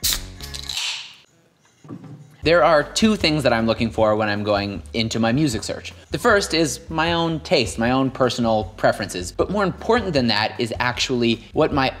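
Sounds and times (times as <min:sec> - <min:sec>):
drink can cracked open: 0:00.0 - 0:01.2.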